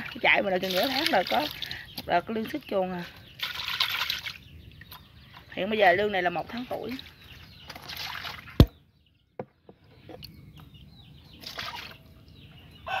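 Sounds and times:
water splashing into plastic tub: 0:00.0 - 0:02.0, 0:03.4 - 0:05.0, 0:06.6 - 0:08.8, 0:11.4 - 0:12.0.

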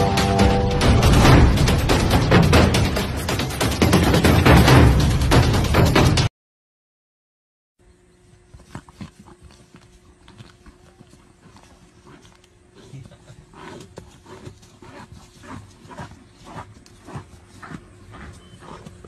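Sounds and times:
steady low hum: 0:07.8 - 0:19.0
animal calling: 0:08.7 - 0:19.0.

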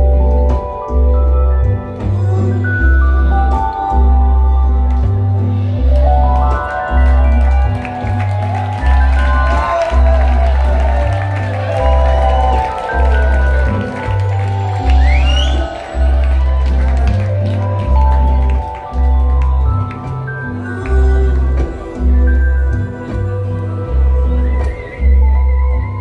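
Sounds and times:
deep bass notes: 0:00.0 - 0:26.0
rock band playing: 0:03.5 - 0:25.3.

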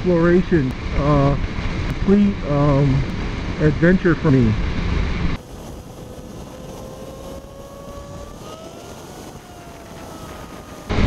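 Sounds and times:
wind and road noise: 0:00.0 - 0:11.0
motorcycle engine at speed: 0:04.6 - 0:11.0.

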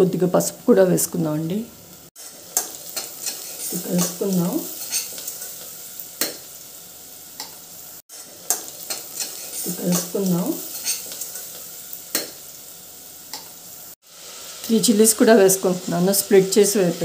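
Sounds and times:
vegetables sizzling in oil: 0:00.0 - 0:17.0.

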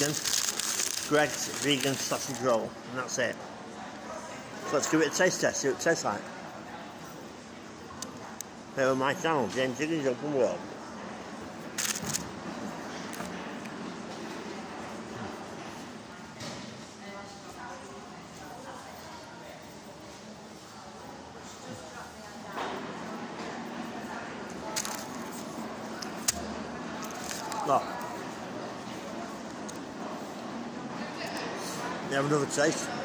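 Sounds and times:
chewing flaky pastry: 0:00.0 - 0:02.4, 0:24.5 - 0:28.2
pastry crackles and clicks: 0:00.0 - 0:02.4, 0:24.6 - 0:25.2, 0:27.0 - 0:27.8.

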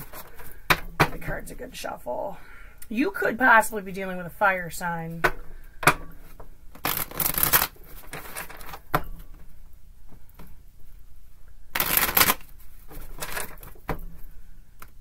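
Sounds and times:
cards being shuffled by hand: 0:06.8 - 0:08.8, 0:11.8 - 0:13.9.

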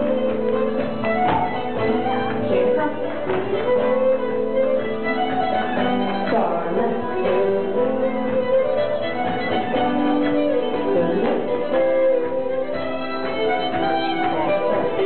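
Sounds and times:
fiddle and guitar dance tune: 0:00.0 - 0:15.0.

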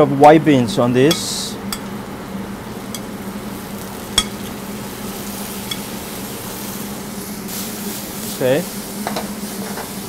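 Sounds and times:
steady low hum: 0:00.0 - 0:10.0
vegetables sizzling in a pan: 0:01.7 - 0:10.0.

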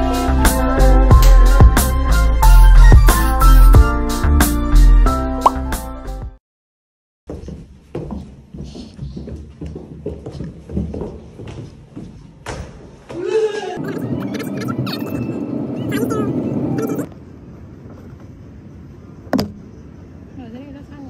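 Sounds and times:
footsteps on stairs: 0:07.3 - 0:13.3.

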